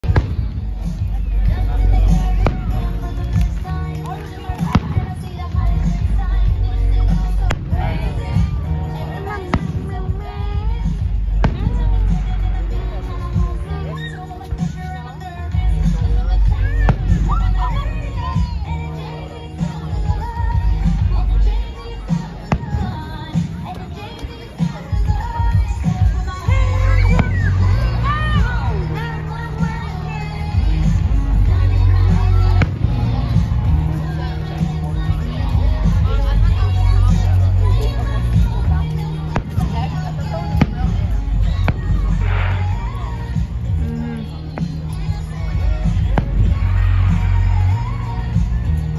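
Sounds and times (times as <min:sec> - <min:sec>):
loud music with heavy bass: 0:00.0 - 0:24.0, 0:24.7 - 0:48.9.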